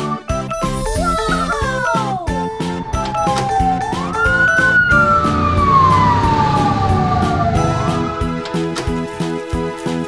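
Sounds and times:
ambulance siren wailing: 0:00.6 - 0:08.8.

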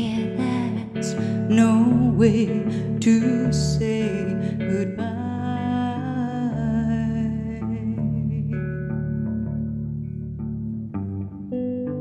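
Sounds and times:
electric guitar: 0:00.0 - 0:12.0.

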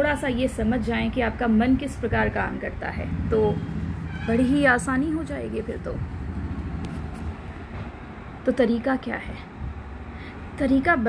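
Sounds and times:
low background rumble: 0:00.0 - 0:07.8.

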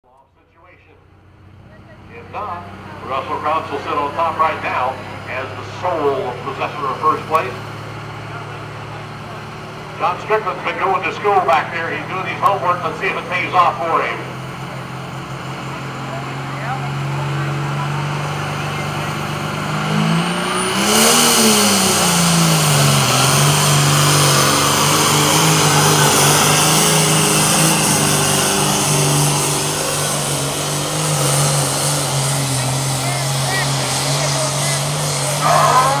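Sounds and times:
diesel tractor engine under load: 0:00.0 - 0:36.0.

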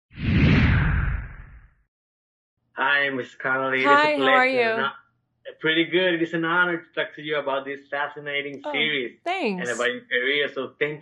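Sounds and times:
whoosh: 0:00.2 - 0:01.7.

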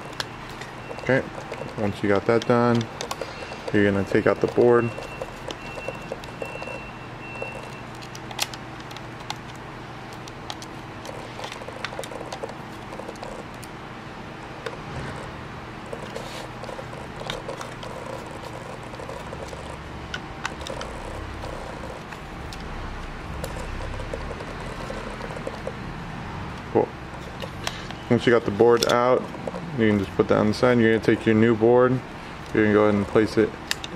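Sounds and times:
screwdriver clicking on plastic: 0:00.0 - 0:13.7, 0:15.9 - 0:22.6, 0:28.5 - 0:30.2, 0:32.4 - 0:33.9
steady background noise: 0:00.0 - 0:33.9.

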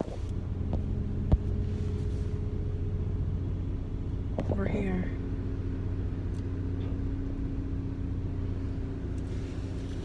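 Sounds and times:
car engine rumble inside cabin: 0:00.0 - 0:10.0.

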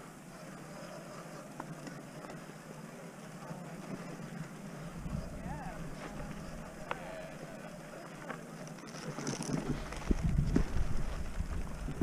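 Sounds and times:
bike rolling over rough ground: 0:00.1 - 0:12.0
wind buffeting microphone: 0:04.9 - 0:06.8, 0:09.5 - 0:12.0.

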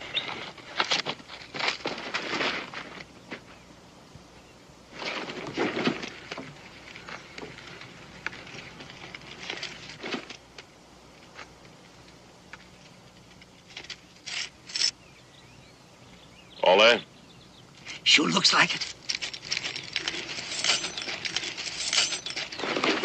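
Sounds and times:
footsteps on dirt: 0:18.9 - 0:23.0
leather bag being handled: 0:19.0 - 0:23.0.

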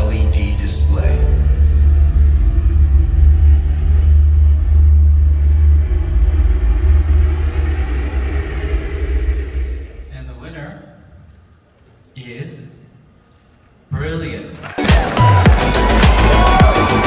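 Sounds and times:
deep bass rumble of music: 0:00.0 - 0:10.6, 0:15.0 - 0:17.0.

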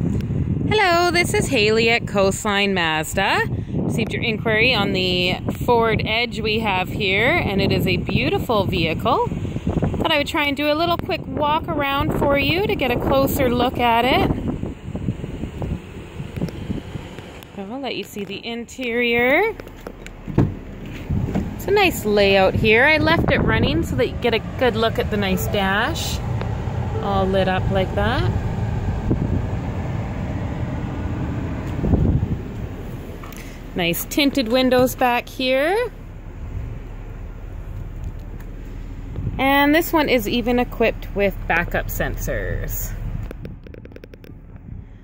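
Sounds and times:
car engine idling: 0:00.0 - 0:45.0
wind buffeting microphone: 0:00.0 - 0:45.0.

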